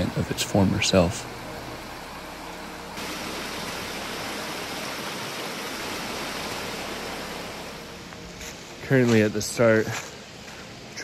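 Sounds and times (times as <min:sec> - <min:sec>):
creek rushing over rocks: 0:03.0 - 0:08.0.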